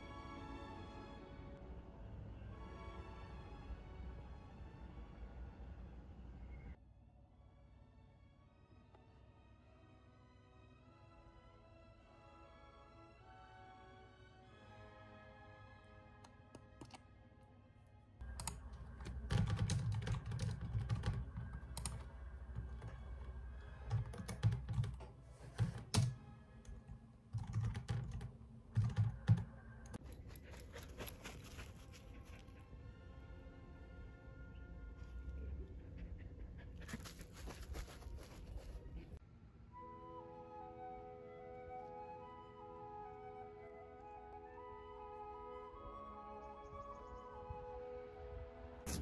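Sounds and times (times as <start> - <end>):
faint soft music: 0.0 - 49.0
typing on computer keyboard: 18.3 - 23.1, 23.8 - 26.2, 27.3 - 30.0
dog panting: 35.5 - 39.0
flute melody: 39.6 - 49.0.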